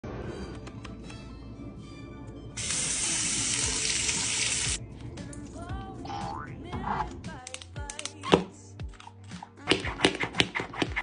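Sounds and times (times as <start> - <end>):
water running from a tap: 2.6 - 4.8.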